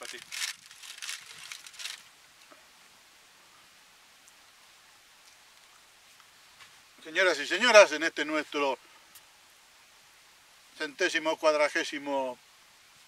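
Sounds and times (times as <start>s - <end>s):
food wrapper crinkling: 0.0s - 2.1s.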